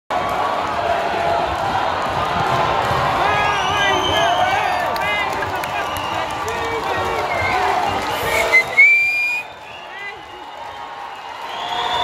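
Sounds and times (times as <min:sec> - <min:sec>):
audience cheering: 0:00.1 - 0:12.0
loud whistle from crowd: 0:03.4 - 0:04.7, 0:07.8 - 0:10.5, 0:11.2 - 0:12.0.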